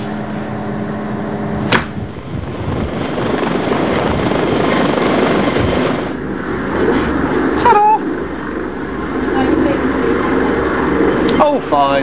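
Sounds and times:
helicopter rotor and turbine: 0.0 - 12.0
steady hum: 0.0 - 12.0.

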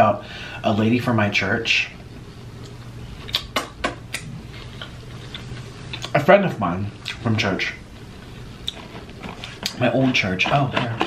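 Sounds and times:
low steady hum: 0.0 - 11.0
wet chewing clicks: 2.6 - 6.2.

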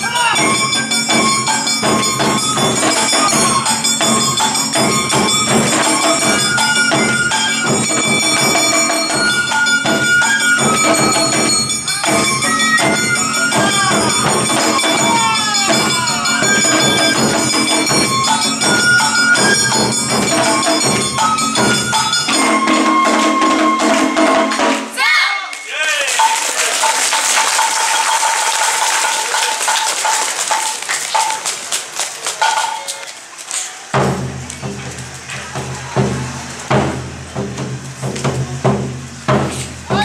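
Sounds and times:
jangling metal percussion: 0.0 - 23.8
dance band music: 0.0 - 31.7.

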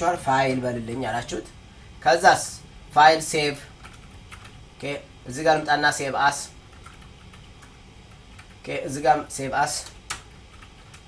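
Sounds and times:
person speaking: 0.0 - 4.1, 4.7 - 6.9, 8.4 - 10.3
keyboard typing: 3.8 - 4.6, 6.7 - 8.7, 9.8 - 11.0.

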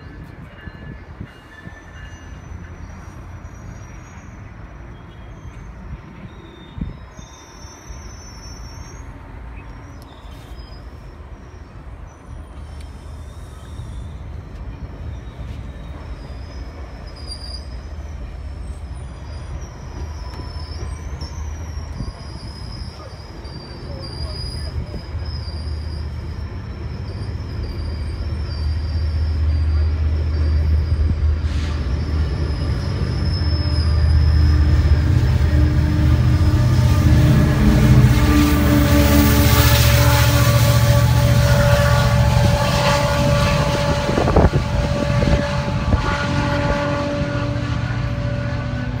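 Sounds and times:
train engine and wheels rumbling: 0.0 - 49.0
high wavering squeal: 9.9 - 41.2.

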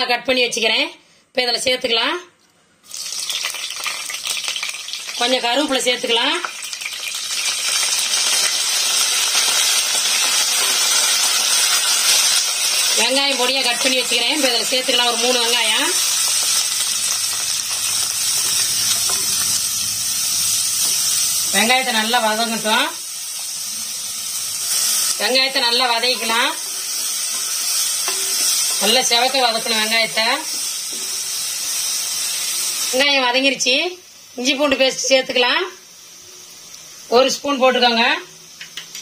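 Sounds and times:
chillies sizzling in hot oil: 2.8 - 39.0.

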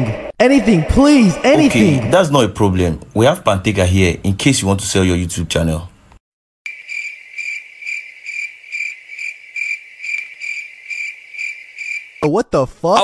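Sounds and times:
cricket chirping: 6.7 - 12.3.

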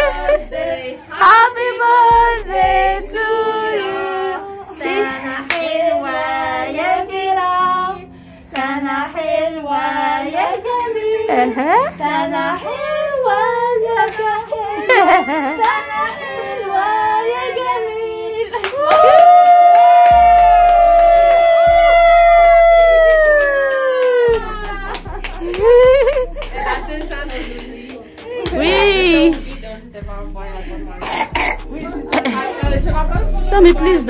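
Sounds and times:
voices singing a birthday song: 0.0 - 18.8, 24.2 - 34.0
child wailing: 14.7 - 16.5.

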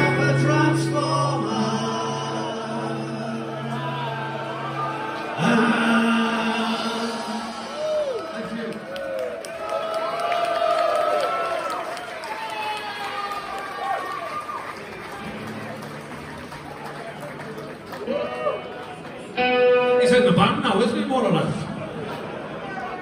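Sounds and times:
audience shouting and singing: 0.0 - 9.4.

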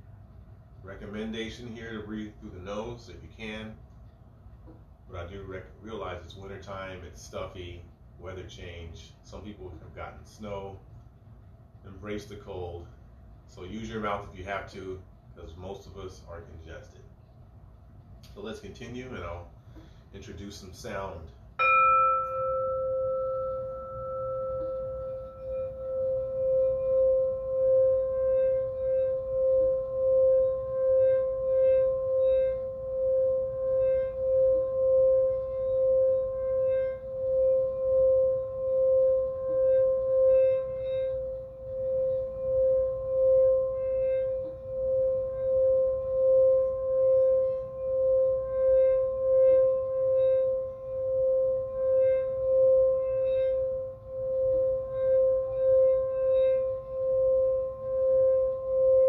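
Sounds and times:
singing bowl ringing: 0.8 - 3.8, 18.4 - 59.0.

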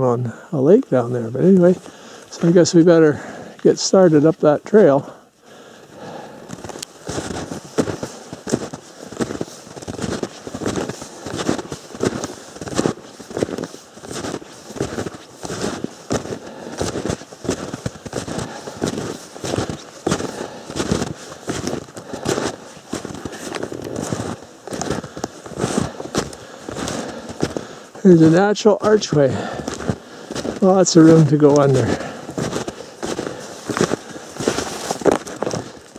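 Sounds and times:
footsteps crunching in snow: 0.6 - 35.9.

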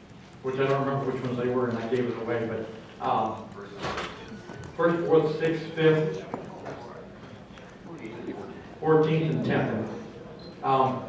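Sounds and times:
man speaking through microphone: 0.4 - 11.0
faint murmuring: 0.6 - 11.0.

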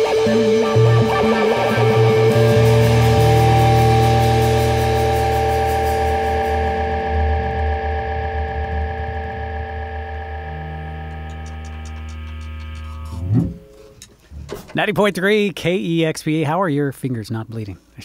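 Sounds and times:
drums: 0.0 - 7.8
held guitar chord ringing: 0.0 - 14.1
electric guitar: 0.0 - 14.7
electric bass: 0.0 - 15.4.

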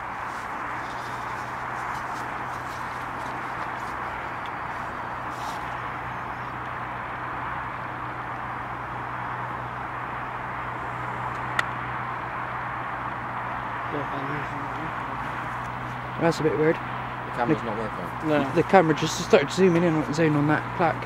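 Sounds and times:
low hum: 0.0 - 21.0.

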